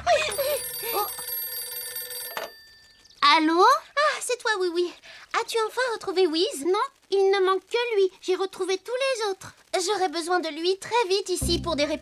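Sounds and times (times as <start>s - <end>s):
cartoon telephone ringing: 0.1s - 3.1s.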